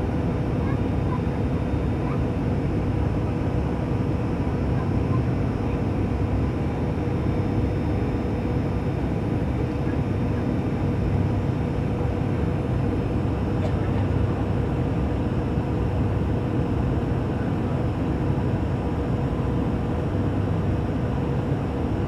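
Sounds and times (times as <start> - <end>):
faint constant hum: 0.0 - 22.0.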